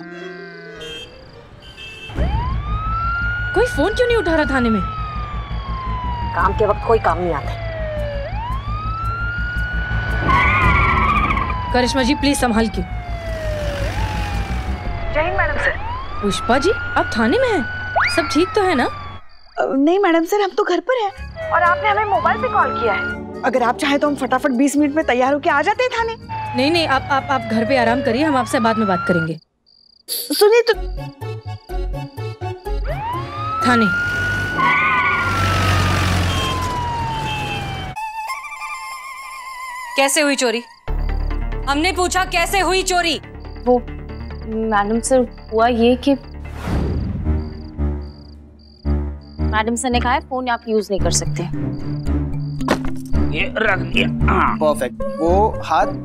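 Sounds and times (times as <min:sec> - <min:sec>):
police siren wailing: 0:00.0 - 0:19.5, 0:21.2 - 0:23.9, 0:25.8 - 0:29.4, 0:32.8 - 0:38.9
low vehicle rumble: 0:01.1 - 0:19.3
wavering screech: 0:10.1 - 0:11.7, 0:34.3 - 0:40.8
background music: 0:20.0 - 0:29.3, 0:30.6 - 0:34.0, 0:40.0 - 0:56.0.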